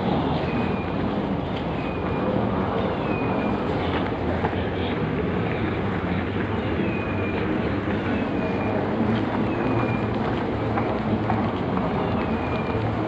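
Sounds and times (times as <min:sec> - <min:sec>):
moving walkway rumbling hum: 0:00.0 - 0:13.0.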